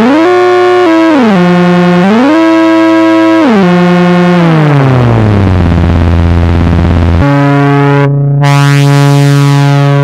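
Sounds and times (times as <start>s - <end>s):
synthesizer tone sliding in pitch: 0.0s - 10.0s.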